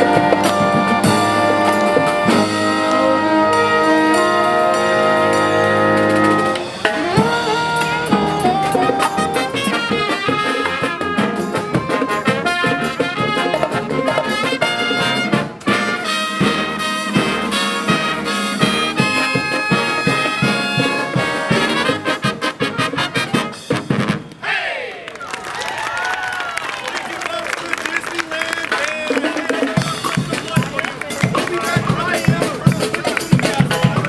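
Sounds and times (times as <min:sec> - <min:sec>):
sliding brass notes: 0:00.0 - 0:24.4
marching brass band playing: 0:00.0 - 0:24.9, 0:28.6 - 0:34.0.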